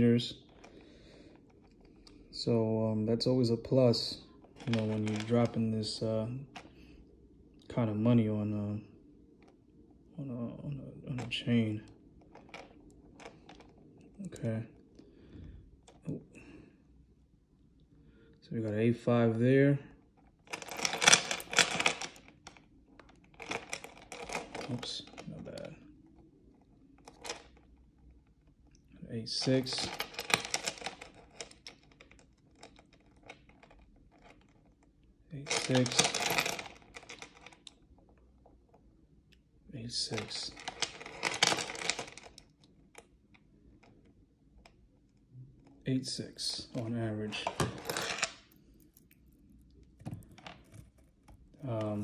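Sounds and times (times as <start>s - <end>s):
chain links clicking and rattling: 35.5s - 37.5s.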